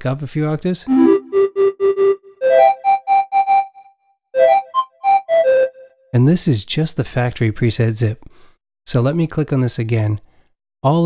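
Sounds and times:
synthesizer pan flute notes: 0.9 - 6.1.

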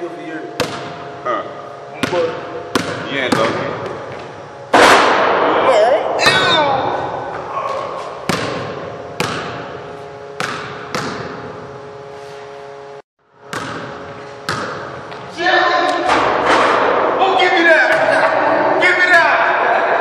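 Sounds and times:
basketball bouncing on hardwood floor: 2.0 - 4.0, 8.3 - 9.7, 10.4 - 11.5, 13.5 - 15.2.

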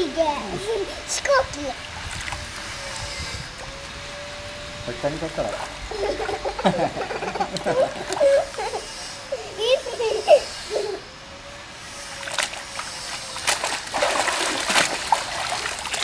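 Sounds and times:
water splashing: 12.1 - 16.0.

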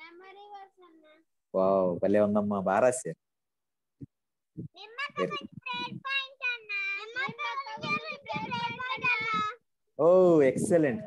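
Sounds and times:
child singing: 4.8 - 9.6.

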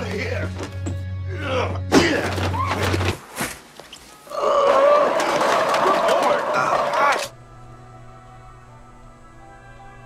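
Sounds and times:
tin cans crashing down: 4.7 - 6.7.

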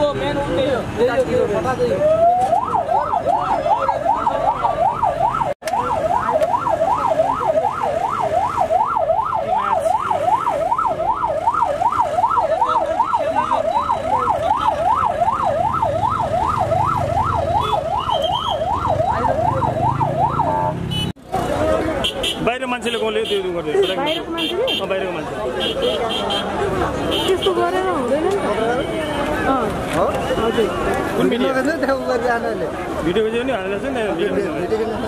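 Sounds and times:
police siren yelping: 1.8 - 20.8.

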